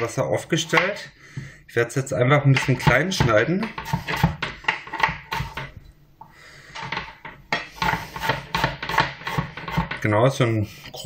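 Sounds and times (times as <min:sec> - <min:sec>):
knife chopping on plastic board: 0:02.5 - 0:05.7, 0:06.9 - 0:10.0.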